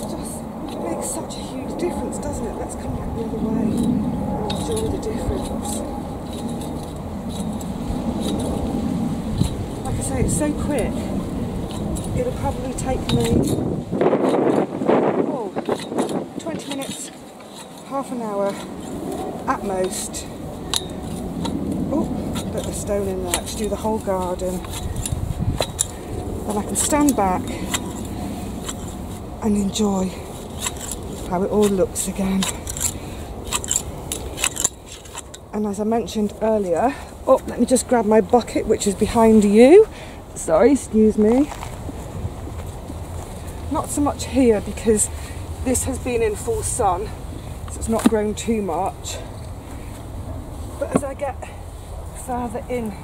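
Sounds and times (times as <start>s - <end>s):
steady low rumble: 0.0s - 53.0s
shears snipping metallic chinks: 3.1s - 8.7s, 11.6s - 14.6s, 15.5s - 35.5s.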